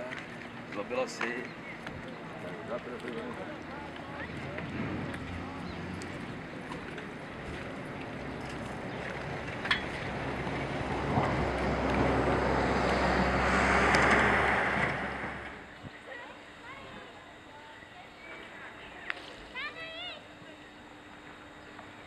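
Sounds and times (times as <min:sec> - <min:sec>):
motorboat engine running: 0:00.0 - 0:15.8.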